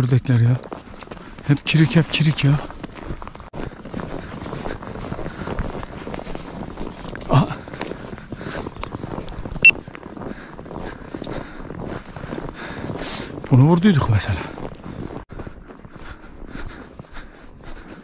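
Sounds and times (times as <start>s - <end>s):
footsteps through dry vegetation: 0.0s - 18.0s.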